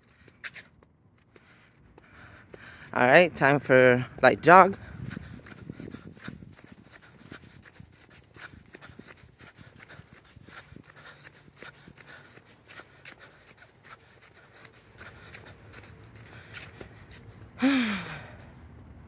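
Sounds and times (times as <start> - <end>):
jogging footsteps on concrete: 0.0 - 18.3
faint breathing: 1.3 - 3.0, 4.8 - 18.5.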